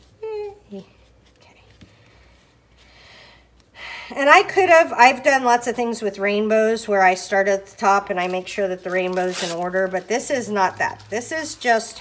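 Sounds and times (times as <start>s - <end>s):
person speaking: 4.1s - 12.0s.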